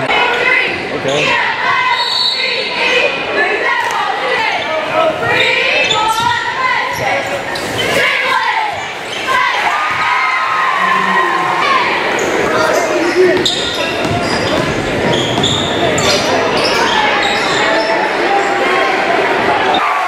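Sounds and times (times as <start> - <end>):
people shouting: 7.9 - 13.4
shoe squeaks on gym floor: 12.2 - 18.1.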